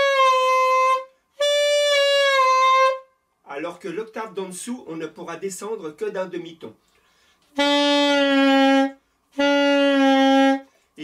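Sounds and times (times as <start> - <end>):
saxophone held notes: 0.0 - 3.1, 7.5 - 10.7.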